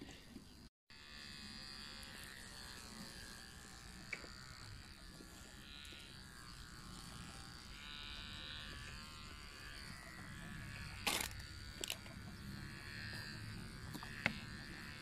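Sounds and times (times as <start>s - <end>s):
electric hair clipper buzzing: 0.9s - 15.0s.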